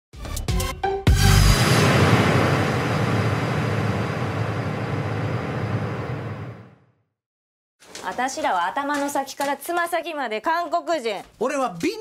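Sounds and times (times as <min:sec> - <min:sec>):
hit sound effect: 0:01.1 - 0:06.9
noisy rushing wash: 0:01.6 - 0:06.7.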